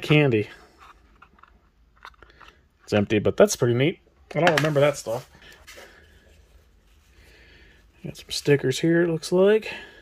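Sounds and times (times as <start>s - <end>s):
person speaking: 0.0s - 0.7s, 2.9s - 5.8s, 7.9s - 10.0s.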